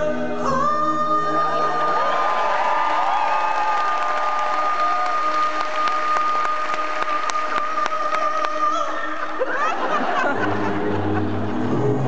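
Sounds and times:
audience applauding and cheering: 0:01.4 - 0:12.0.

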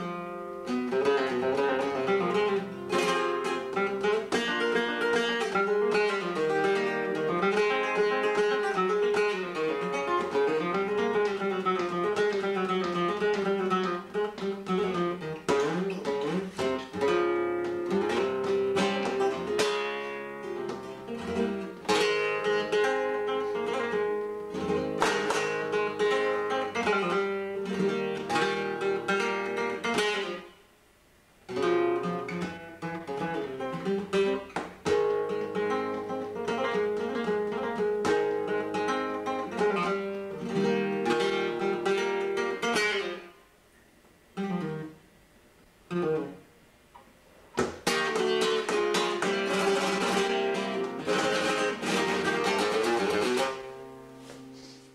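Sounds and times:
solo flamenco guitar: 0:00.0 - 0:30.7, 0:31.4 - 0:54.9.

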